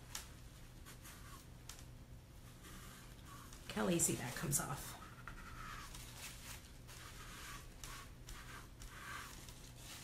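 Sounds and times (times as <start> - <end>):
wipe rubbing chalkboard: 2.4 - 10.0.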